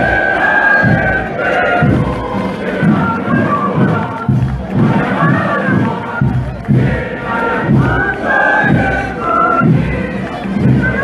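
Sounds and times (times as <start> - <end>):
crowd shouting and chanting: 0.0 - 11.0.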